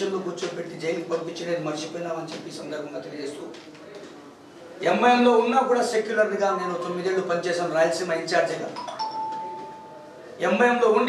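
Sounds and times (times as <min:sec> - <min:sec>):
two-note electronic chime: 0:08.8 - 0:10.0.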